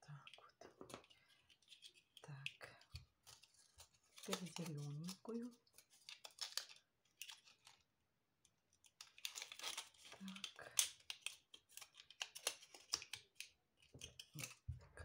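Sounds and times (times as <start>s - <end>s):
plastic pieces crackling: 3.2s - 7.9s, 8.7s - 14.7s.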